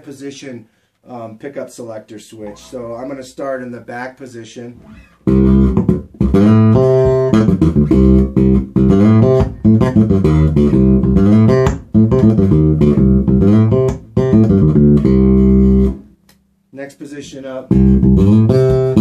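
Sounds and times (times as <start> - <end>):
electric bass funk line: 4.8 - 16.1, 17.7 - 19.0.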